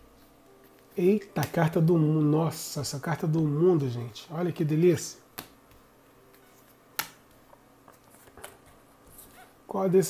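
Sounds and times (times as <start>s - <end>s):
card snapping onto tabletop: 7.0s - 7.2s.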